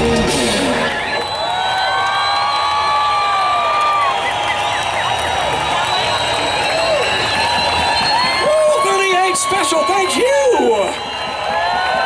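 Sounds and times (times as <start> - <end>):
crowd cheering and whistling: 0.0 - 12.0.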